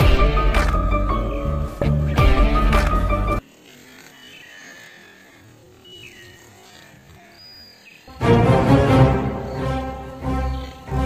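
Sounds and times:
bird whistles: 9.3s - 10.9s.

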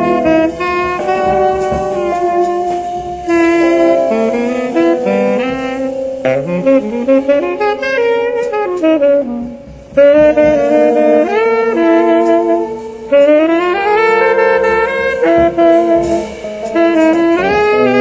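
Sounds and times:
saxophones playing jazz ballad: 0.0s - 18.0s.

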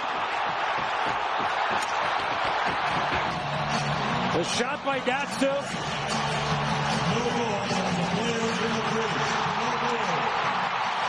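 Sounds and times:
arena crowd din: 0.0s - 11.0s.

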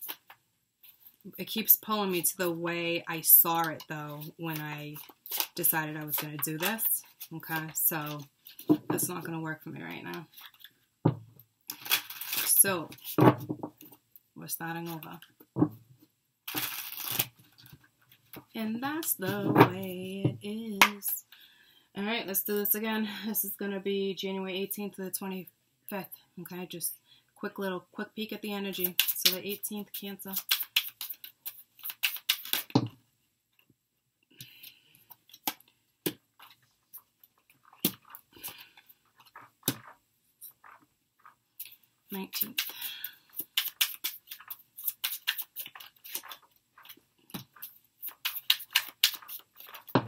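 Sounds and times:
cards being shuffled: 4.2s - 8.8s, 16.5s - 18.5s, 30.3s - 32.8s, 37.6s - 50.0s
cards clicking on table: 48.1s - 49.9s.

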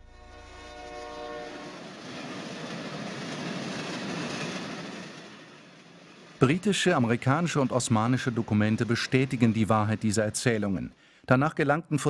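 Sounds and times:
train horn chord: 0.0s - 1.9s
train running along track: 0.0s - 12.0s.

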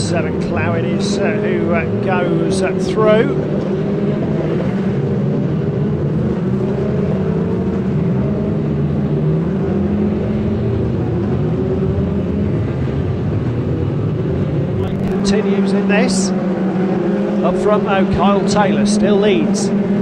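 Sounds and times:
racing car engines: 0.0s - 20.0s.

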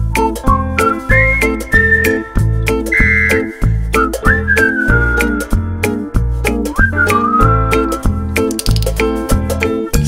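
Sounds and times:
whistled melody: 0.0s - 8.2s
bass and percussion backing: 0.0s - 10.0s.

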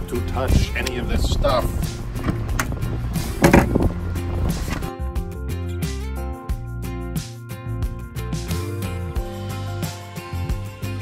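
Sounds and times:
background music: 0.0s - 11.0s
rummaging through storage bay: 3.3s - 4.0s
storage hatch clattering open: 3.3s - 4.0s.

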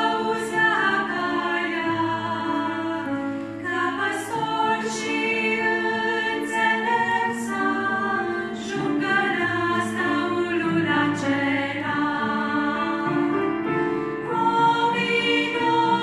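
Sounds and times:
women singing in harmony: 0.0s - 16.0s.

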